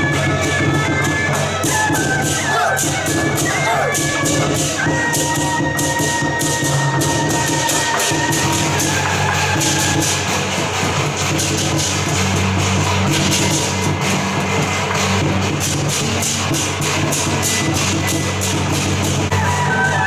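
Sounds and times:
clashing cymbals: 0:00.0 - 0:20.0
drum: 0:00.0 - 0:20.0
gongs: 0:00.0 - 0:20.0.

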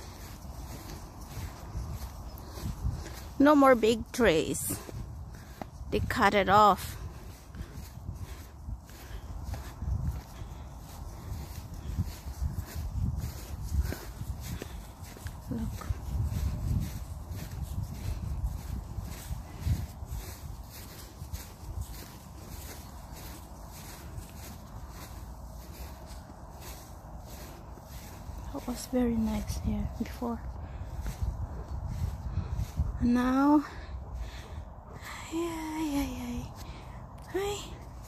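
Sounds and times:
footsteps on frosty grass: 0:00.0 - 0:38.0.

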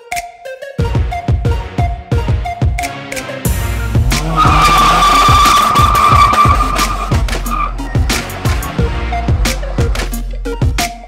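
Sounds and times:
electronic music with steady beat: 0:00.0 - 0:11.0
car tyres squealing: 0:04.0 - 0:10.1.

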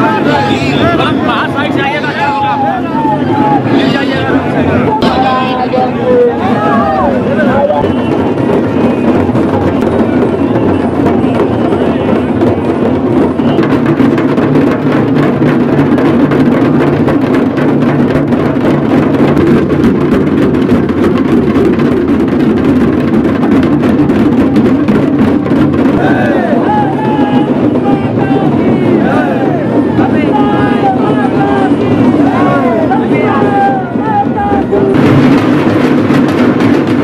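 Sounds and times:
crowd noise: 0:00.0 - 0:37.0
fast drumming and percussion: 0:00.0 - 0:37.0.

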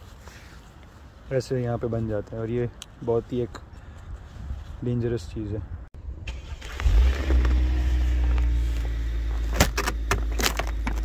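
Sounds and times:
car engine starting and idling: 0:06.1 - 0:11.0.

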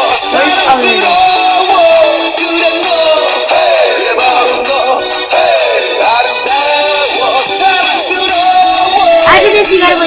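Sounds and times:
pop song with processed vocal: 0:00.0 - 0:10.0.

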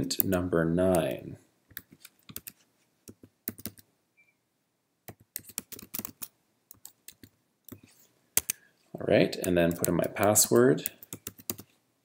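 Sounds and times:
computer keyboard typing: 0:01.7 - 0:03.9, 0:05.1 - 0:08.6, 0:09.4 - 0:11.7.

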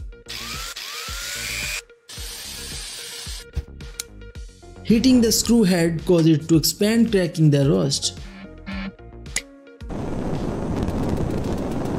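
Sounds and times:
electric drill motor whine: 0:00.3 - 0:03.4.

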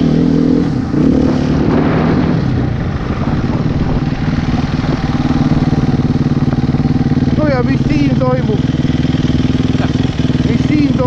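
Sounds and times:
dirt bike engine idling: 0:02.6 - 0:11.0.

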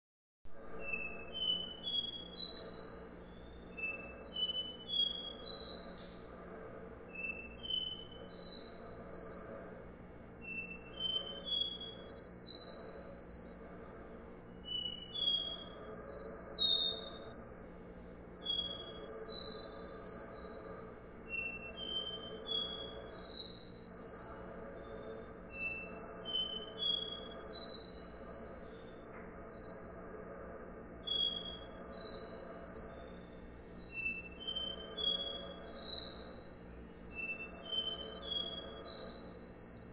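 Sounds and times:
bird singing whistled notes: 0:00.5 - 0:39.9.

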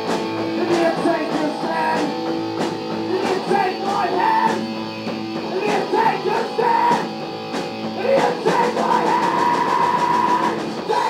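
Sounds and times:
electric guitar high note: 0:00.0 - 0:11.0
punk rock band playing live: 0:00.0 - 0:11.0
steady drum beat: 0:00.0 - 0:11.0.

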